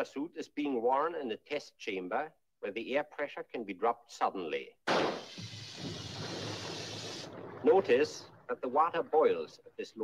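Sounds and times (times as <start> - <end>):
membrane bursting bang: 4.9 - 7.7.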